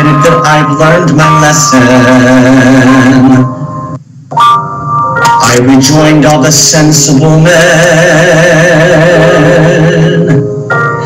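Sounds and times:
man singing held note: 0.0 - 3.7
backing music: 0.0 - 11.0.

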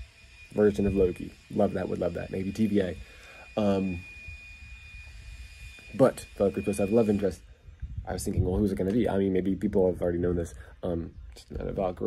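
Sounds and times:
faint high whine: 0.0 - 12.0
low steady rumble: 0.0 - 12.0.

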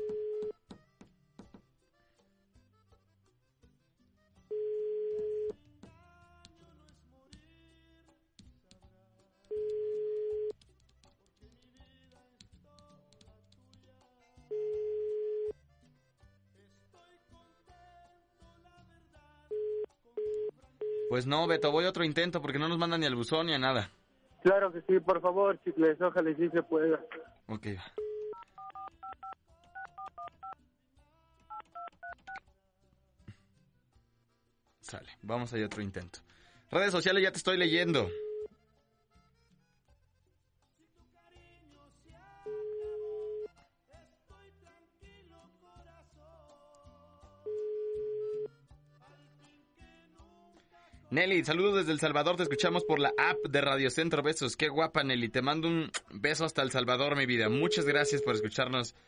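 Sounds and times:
telephone ringback beep: 0.0 - 0.5, 4.5 - 5.5, 14.5 - 15.5, 19.5 - 21.6, 38.0 - 38.5, 42.5 - 43.5, 47.5 - 48.5, 52.4 - 53.7, 57.6 - 58.6
phone dial tone: 0.0 - 0.6, 4.5 - 5.6, 9.5 - 10.6, 14.5 - 15.5, 28.0 - 30.6, 38.0 - 38.5, 42.5 - 43.5, 47.5 - 48.5, 52.4 - 53.6, 57.6 - 58.6
touch-tone keypad beeps: 52.4 - 53.7, 57.6 - 58.6.

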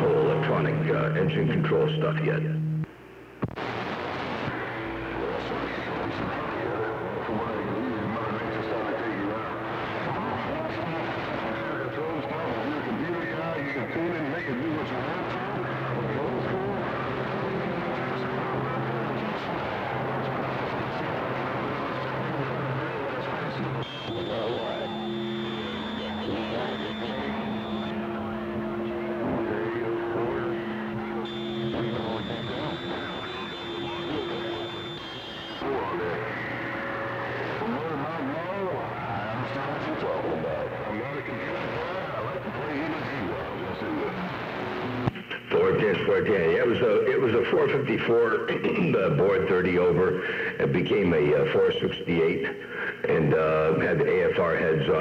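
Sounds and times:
droning heterodyne tones: 0.0 - 2.9, 3.6 - 44.2
radio static hiss and crackle: 0.0 - 55.0
faint distant voices: 4.6 - 53.5.

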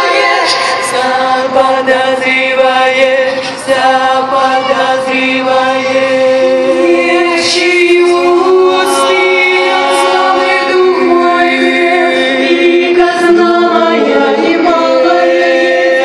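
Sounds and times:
women's a cappella group singing: 0.0 - 16.0.

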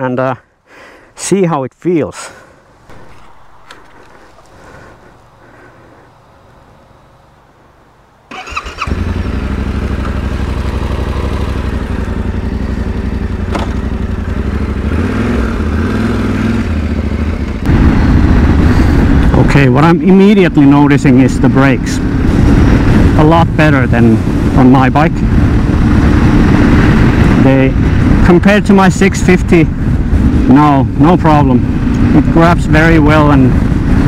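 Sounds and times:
motorcycle engine running: 8.3 - 34.0.

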